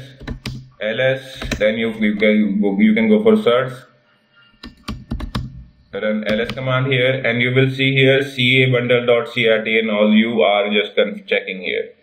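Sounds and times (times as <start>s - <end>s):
computer keyboard typing: 0.1s - 0.7s, 1.3s - 1.8s, 4.6s - 5.6s, 6.3s - 6.7s.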